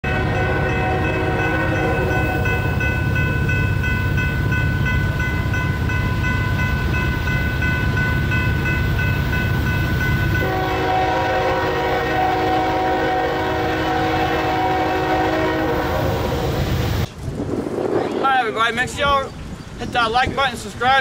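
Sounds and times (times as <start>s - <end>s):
locomotive air horn blast: 0.0s - 2.5s, 10.4s - 16.9s
steady high tone: 0.0s - 10.9s
train rumble: 0.0s - 21.0s.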